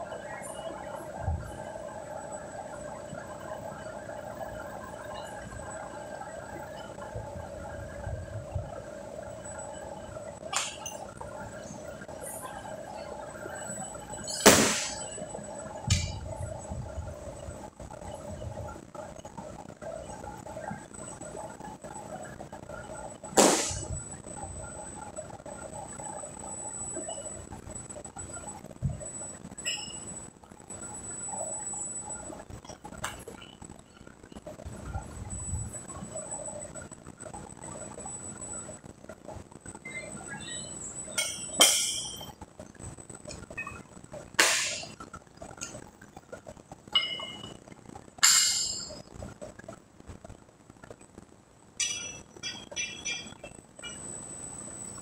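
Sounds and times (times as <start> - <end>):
faint high-pitched whine: 0.0 - 55.0
gym room noise: 0.0 - 55.0.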